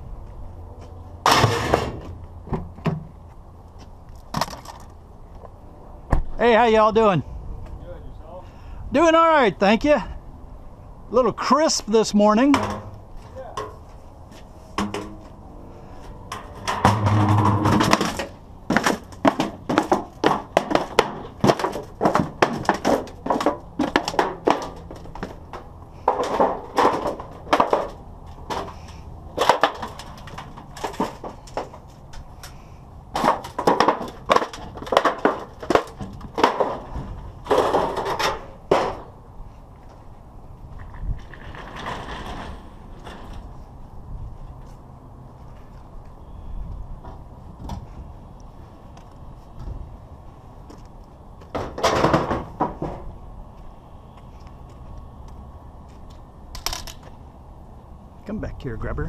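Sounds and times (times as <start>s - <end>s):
sheet-metal duct crunching: 12.4s - 39.3s, 41.0s - 43.7s.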